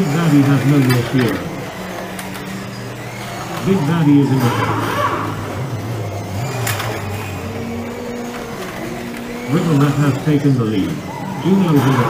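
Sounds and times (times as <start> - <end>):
slot car motors whirring: 0.0 - 12.0.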